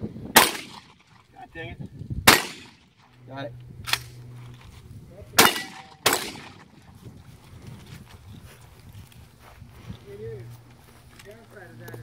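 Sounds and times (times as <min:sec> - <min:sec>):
gunshot echo: 0:00.4 - 0:01.1, 0:02.3 - 0:02.9, 0:05.4 - 0:06.8
shotgun shots: 0:00.4 - 0:01.2, 0:02.2 - 0:03.0, 0:05.4 - 0:06.8.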